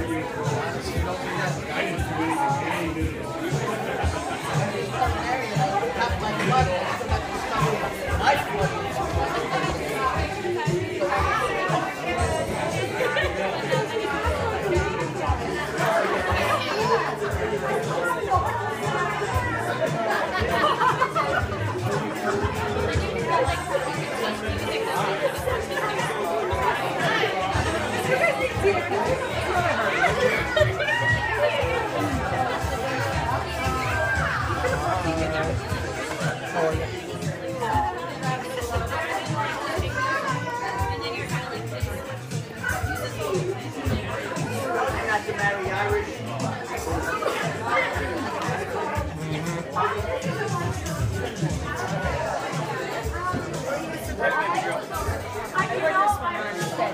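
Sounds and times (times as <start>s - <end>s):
background music with steady beat: 0.0s - 56.9s
crowd chattering: 0.0s - 56.9s.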